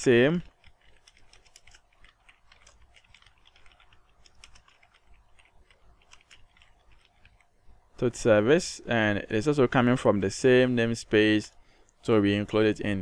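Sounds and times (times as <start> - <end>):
computer keyboard typing: 0.1 - 7.5.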